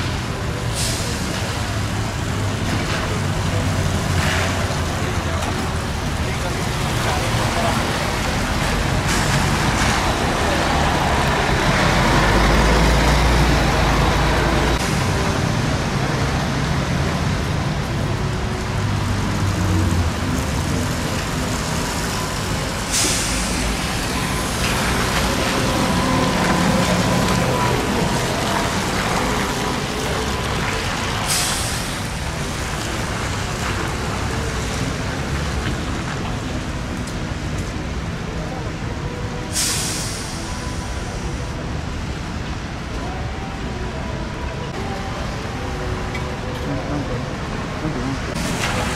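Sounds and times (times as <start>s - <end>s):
bus engine rumble: 0.0s - 48.9s
trolleybus passing: 0.0s - 48.9s
tyre and traffic noise on wet road: 0.0s - 48.9s
air brake hisses: 22.9s - 23.8s, 39.6s - 40.5s.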